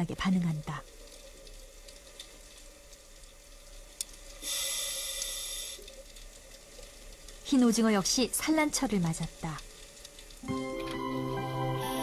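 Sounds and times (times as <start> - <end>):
faint steady hum: 0.0 - 12.0
high hiss: 4.3 - 6.0, 10.4 - 12.0
water-like hiss: 4.3 - 6.1, 11.7 - 12.0.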